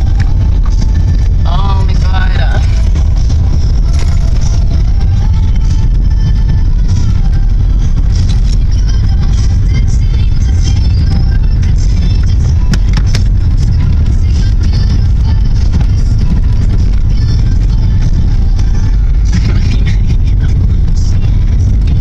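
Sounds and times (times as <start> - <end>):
car cabin rumble: 0.0 - 22.0
faint music: 0.0 - 22.0.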